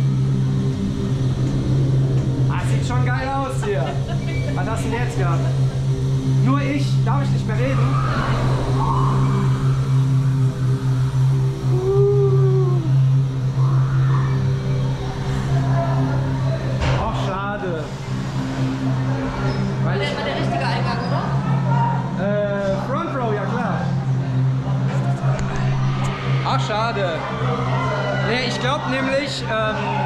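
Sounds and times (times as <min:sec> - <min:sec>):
low droning hum: 0:00.0 - 0:30.0.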